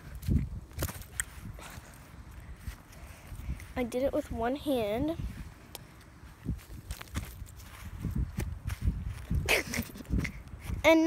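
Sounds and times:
footsteps on grass: 0.8 - 10.8.

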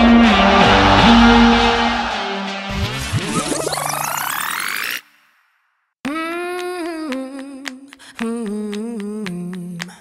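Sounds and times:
person singing unaccompanied: 6.0 - 10.0.

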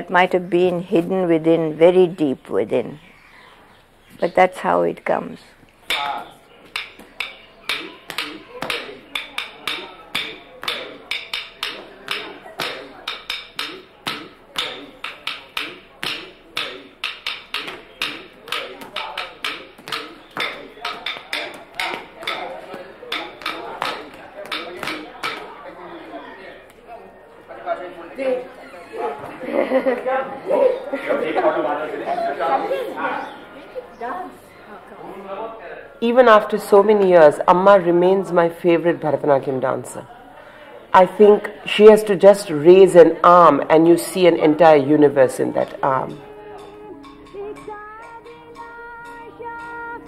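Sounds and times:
voices talking: 0.0 - 50.0
wooden stick striking wooden block: 5.8 - 25.5
person calling out rhythm syllables: 5.9 - 25.4, 45.6 - 50.0.

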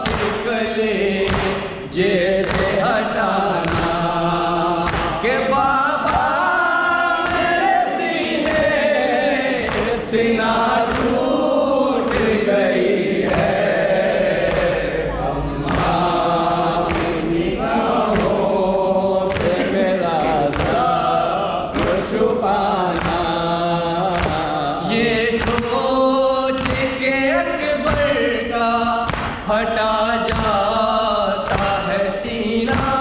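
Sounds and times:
men singing lament in chorus: 0.0 - 33.0
hand strikes on chest: 1.2 - 1.8, 29.0 - 29.5.

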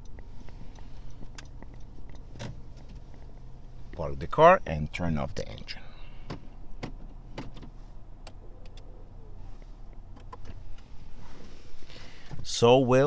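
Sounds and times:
car control clicks: 0.0 - 4.0, 9.6 - 10.9
car engine idling: 0.0 - 12.8.

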